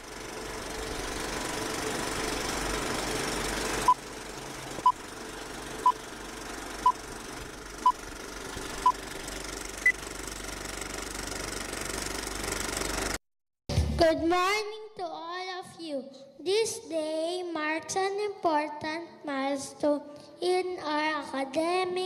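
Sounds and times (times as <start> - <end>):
film projector rattle and hiss: 0.0 - 13.2.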